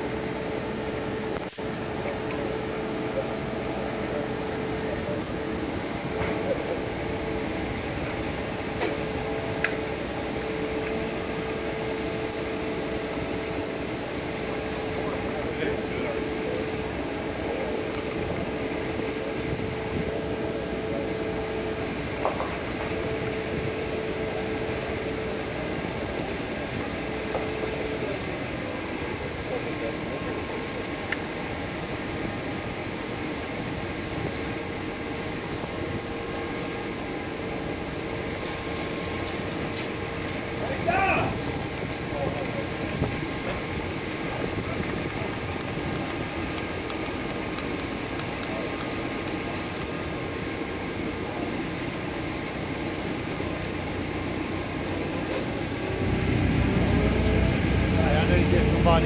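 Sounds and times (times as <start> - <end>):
truck engine humming: 0.0 - 59.0.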